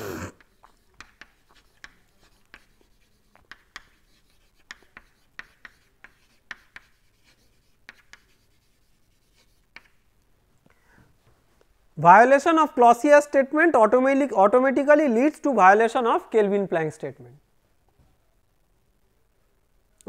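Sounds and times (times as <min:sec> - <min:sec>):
chalk scratching on blackboard: 0:00.0 - 0:10.0.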